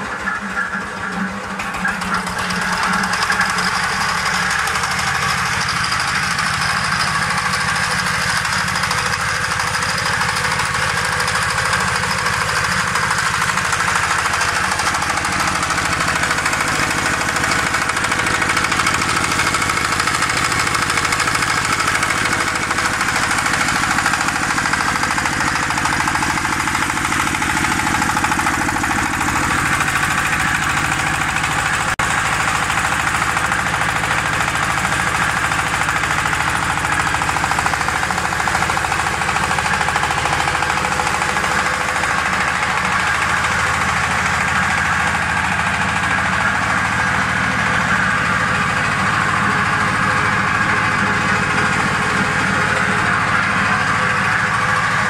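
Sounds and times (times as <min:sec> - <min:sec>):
diesel engine running: 0:00.0 - 0:55.0.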